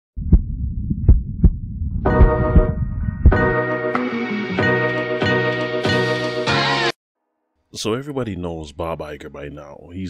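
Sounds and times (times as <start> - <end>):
deep heartbeat-like thumps: 0.2 - 3.6
low bass rumble: 0.2 - 3.6.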